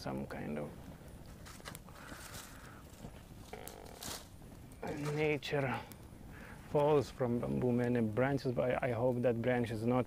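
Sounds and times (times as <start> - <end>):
campfire crackling: 0.0 - 10.0
fire pops: 0.0 - 10.0.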